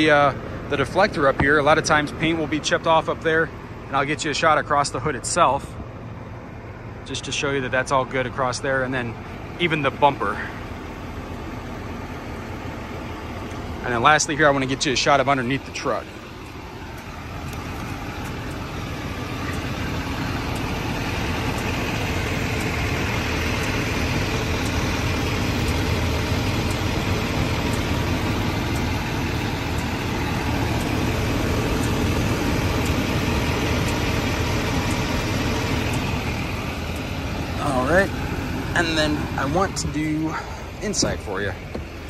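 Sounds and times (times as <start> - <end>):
vehicle engine idling: 0.0 - 42.0.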